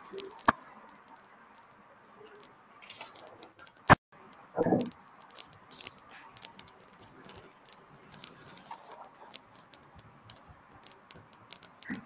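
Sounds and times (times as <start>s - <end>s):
computer keys clicking: 0.0s - 12.0s.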